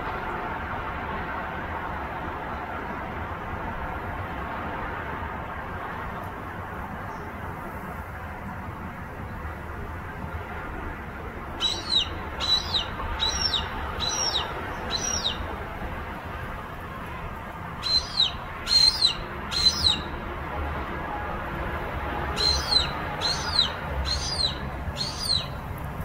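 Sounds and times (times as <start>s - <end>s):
hawk calling: 11.6s - 15.6s, 17.8s - 20.1s, 22.3s - 25.6s.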